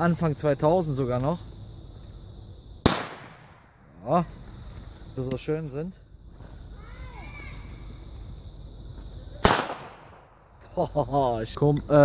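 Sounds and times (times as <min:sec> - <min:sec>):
firecracker bang: 0:02.8 - 0:03.8, 0:09.4 - 0:10.6.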